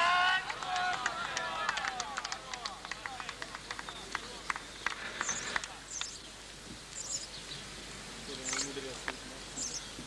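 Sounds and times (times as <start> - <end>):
distant voices: 0.0 - 10.0
high chirps: 3.8 - 7.6.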